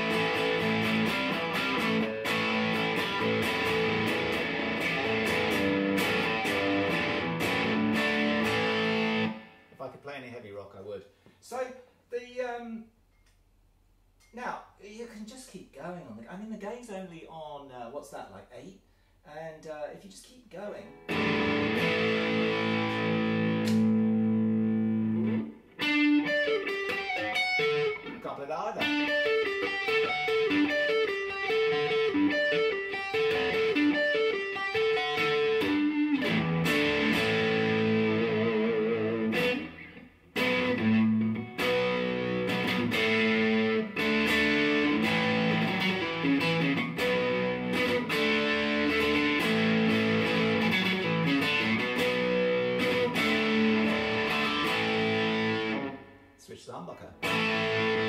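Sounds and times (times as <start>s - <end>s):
overdriven electric guitar riffs: 0.0s - 9.8s, 20.9s - 28.2s, 28.8s - 56.3s, 57.2s - 58.0s.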